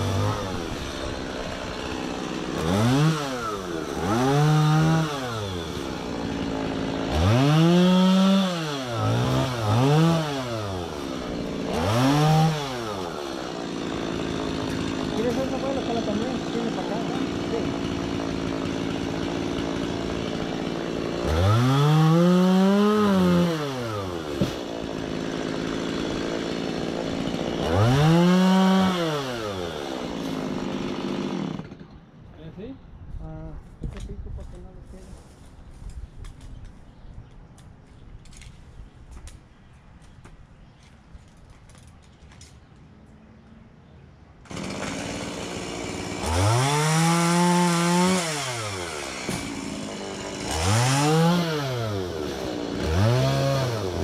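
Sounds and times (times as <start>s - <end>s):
chainsaw revving: 0.0s - 31.9s, 44.5s - 54.0s.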